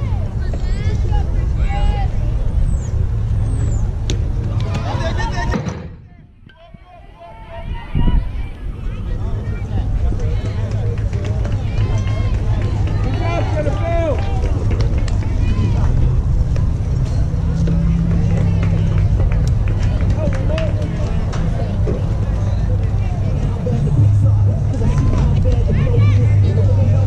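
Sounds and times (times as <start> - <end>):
voices calling out and chattering: 0.0 - 27.0
steady low rumble: 7.4 - 27.0.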